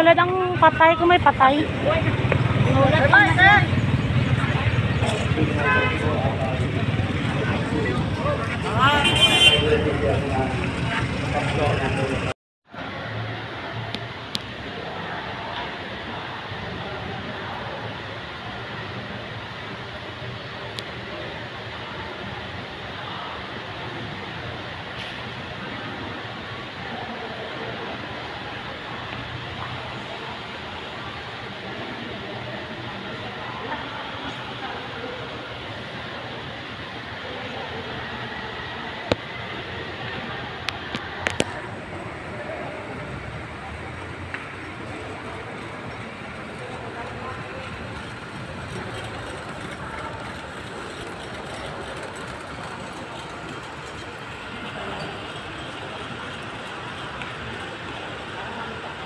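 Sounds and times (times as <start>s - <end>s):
murmur of voices: 0.0s - 59.0s.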